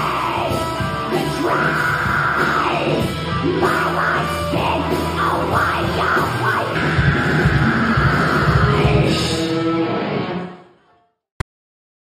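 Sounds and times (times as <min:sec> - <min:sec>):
rock band electric guitar and bass: 0:00.0 - 0:10.8.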